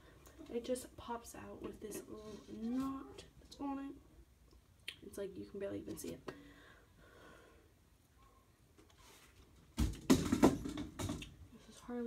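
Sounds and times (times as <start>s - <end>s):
objects rustling and knocking: 8.8s - 11.4s.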